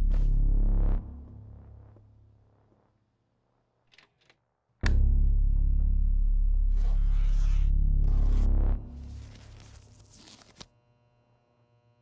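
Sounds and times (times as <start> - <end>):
loud low music sting: 4.8 - 9.4.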